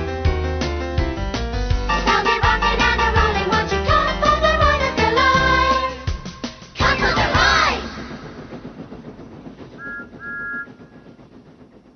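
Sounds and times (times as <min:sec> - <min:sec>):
train whistle: 0:09.8 - 0:11.1.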